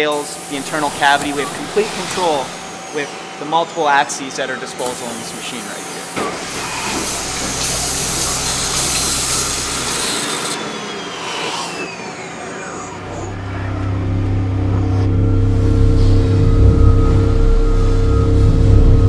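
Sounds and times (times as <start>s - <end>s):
hissing coolant spray: 0.0s - 12.9s
milling machine whine: 0.0s - 19.0s
droning music with held tones: 0.3s - 10.9s, 12.5s - 19.0s.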